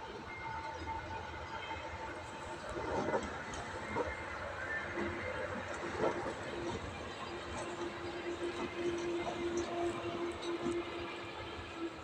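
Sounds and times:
diesel locomotive engine: 0:00.0 - 0:12.0
train wheels rolling on rails: 0:00.0 - 0:12.0.

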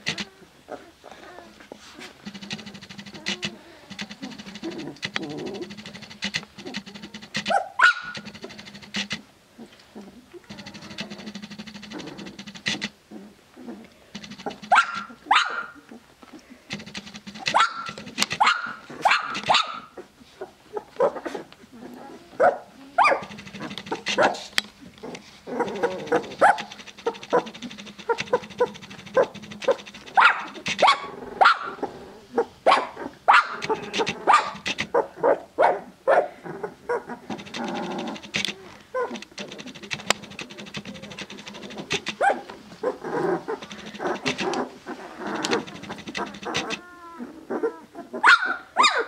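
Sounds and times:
puppies crying: 0:00.0 - 0:09.2, 0:10.0 - 0:16.0, 0:16.7 - 0:35.4, 0:36.4 - 0:49.0.

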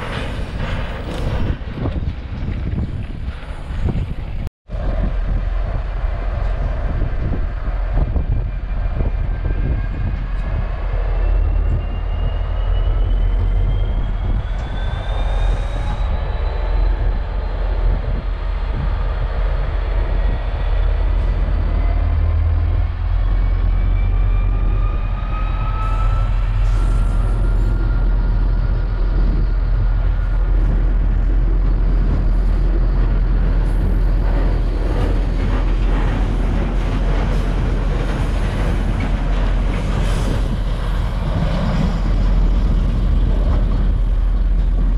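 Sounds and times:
diesel locomotive engine rumble: 0:00.0 - 0:44.9.

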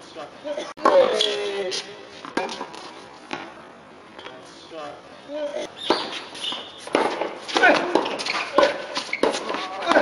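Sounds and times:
tennis racket hitting ball: 0:05.8 - 0:10.0.

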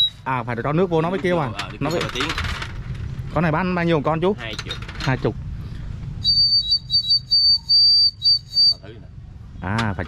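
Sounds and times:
water whistle toots: 0:06.2 - 0:08.8.

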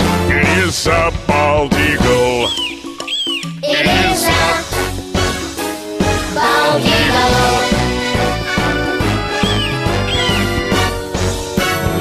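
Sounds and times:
children's song backing music: 0:00.0 - 0:12.0
bird of prey cries: 0:02.4 - 0:03.6, 0:09.4 - 0:10.8.

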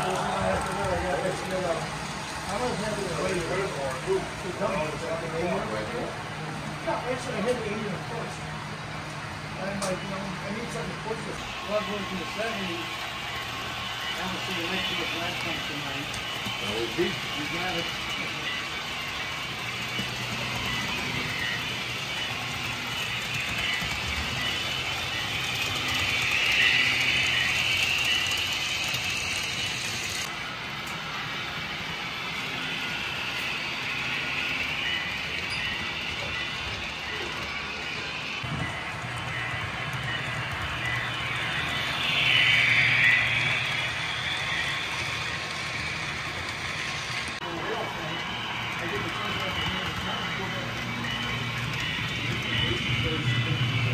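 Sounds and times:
model train wheels rolling: 0:00.0 - 0:53.9.

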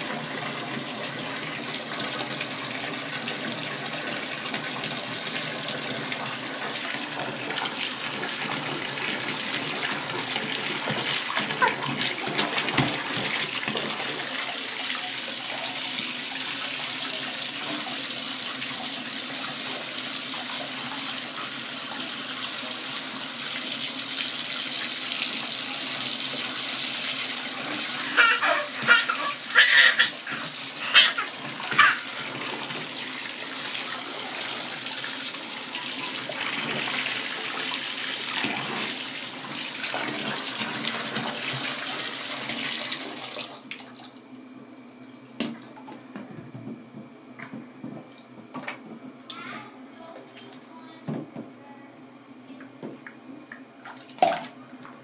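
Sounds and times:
bathtub tap running: 0:01.5 - 0:43.4.

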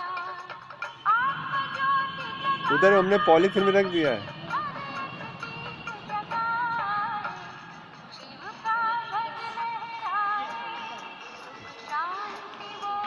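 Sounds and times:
woman singing: 0:00.0 - 0:02.8, 0:04.4 - 0:13.0.

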